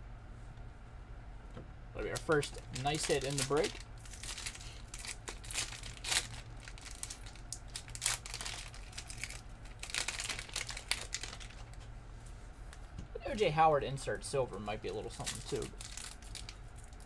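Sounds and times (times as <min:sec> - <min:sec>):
foil wrapper crinkling: 0:02.0 - 0:11.9, 0:14.8 - 0:17.0.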